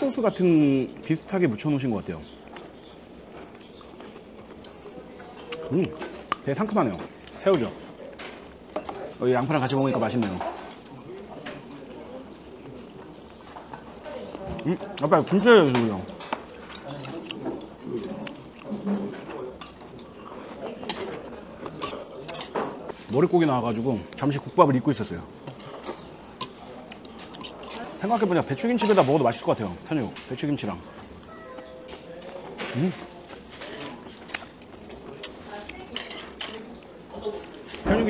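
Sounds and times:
faint voices: 0.0 - 38.0
chewing: 1.8 - 24.5, 25.3 - 37.9
utensils clicking on bowls and plates: 2.5 - 11.9, 25.4 - 30.8
chopsticks clicking on dishes: 25.4 - 30.5.

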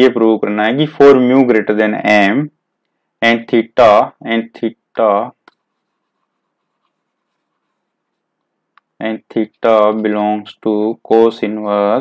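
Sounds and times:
stylus clicking on tablet: 5.4 - 9.0
man's voice: 9.0 - 12.0.

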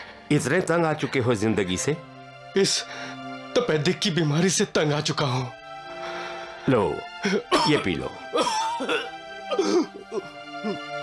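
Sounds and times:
background music with held notes: 0.0 - 11.0
man coughing: 7.3 - 10.8.

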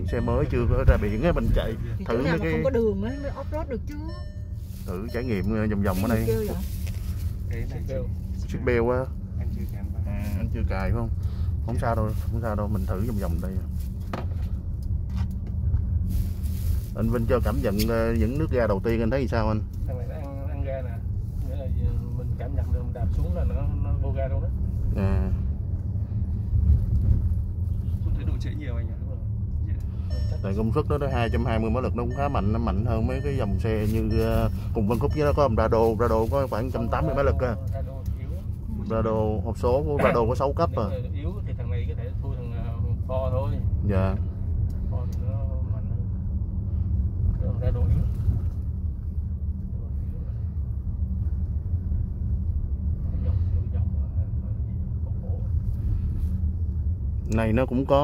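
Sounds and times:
car driving heard from cabin: 0.0 - 58.0.

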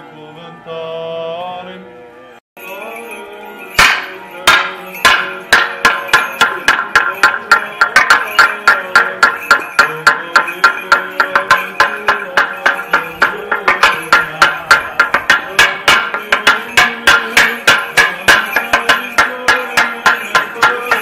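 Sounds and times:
wooden plank beaten with mallet: 3.8 - 21.0.

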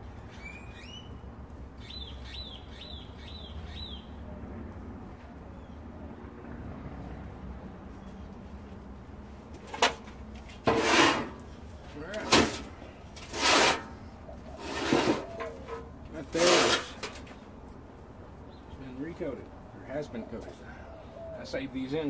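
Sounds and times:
hand tool scraping: 9.7 - 17.3.

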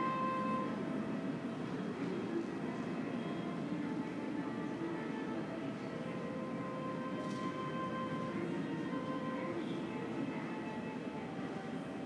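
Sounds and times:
hum of check-in hall: 0.0 - 12.0.

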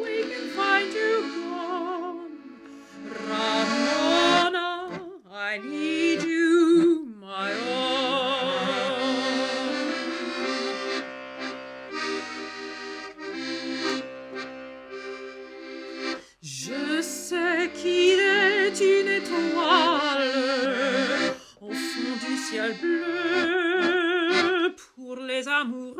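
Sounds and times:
woman singing with vibrato: 0.0 - 10.5, 16.4 - 25.9
accordion accompaniment: 0.0 - 24.9.

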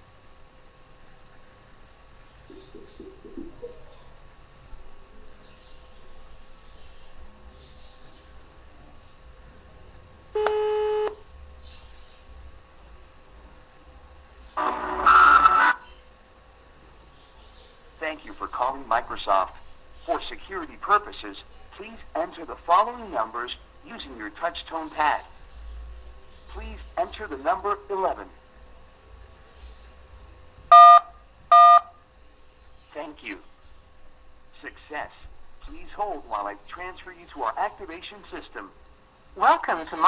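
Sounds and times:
electronic call tone: 10.4 - 11.2, 14.6 - 15.8, 30.7 - 32.0
touch-tone dial beeps: 30.7 - 31.9.

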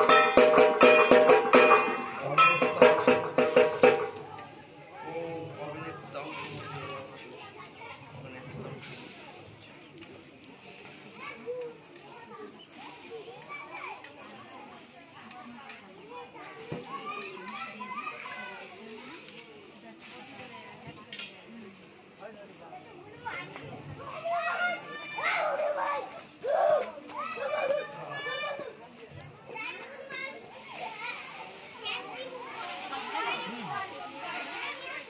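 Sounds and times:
children talking and calling: 0.0 - 35.0.

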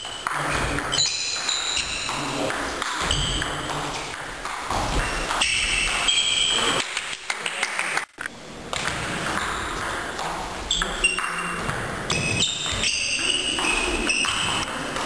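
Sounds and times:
shoes squeaking on floor: 0.0 - 4.1, 4.7 - 6.8, 10.7 - 14.7.

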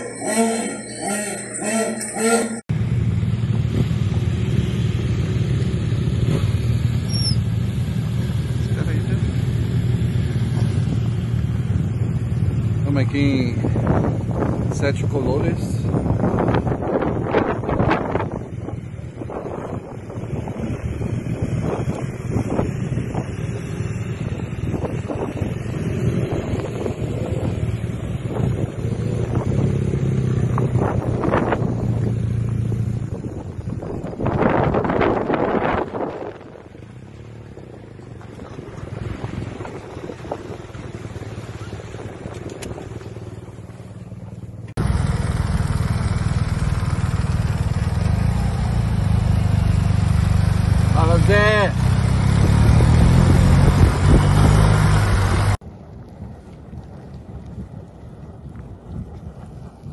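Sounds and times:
motorcycle engine running close: 2.7 - 59.9
wind buffeting microphone: 13.3 - 44.6, 51.9 - 59.9.

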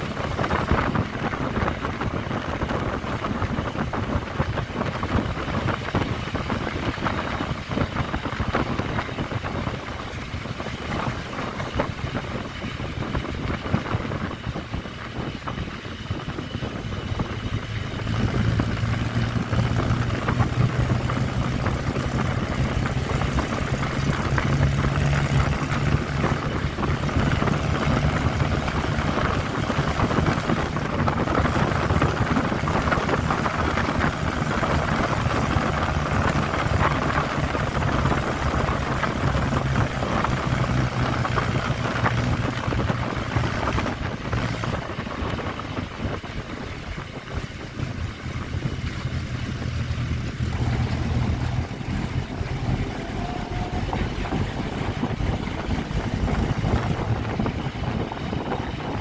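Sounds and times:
road noise: 0.0 - 59.0
vehicle engine running: 0.0 - 59.0.

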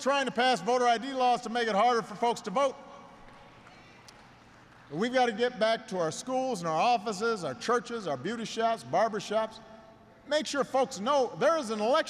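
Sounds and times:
man speaking: 0.0 - 3.1, 4.9 - 12.0
room noise of a large hall: 0.0 - 12.0.

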